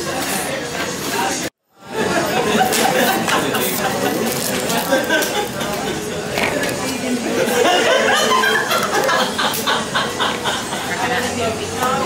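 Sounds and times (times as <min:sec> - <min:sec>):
crowd chatter: 0:00.0 - 0:12.0
people cackling: 0:02.0 - 0:06.4, 0:07.2 - 0:11.1.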